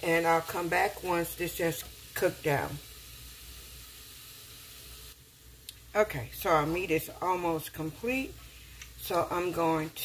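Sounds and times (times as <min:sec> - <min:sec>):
sausage and onion sizzling in skillet: 0:00.0 - 0:10.0.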